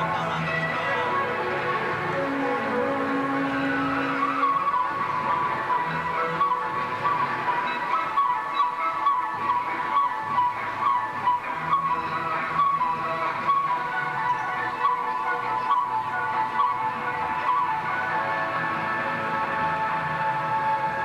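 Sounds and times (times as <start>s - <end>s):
melody over held low note: 0.0s - 21.0s.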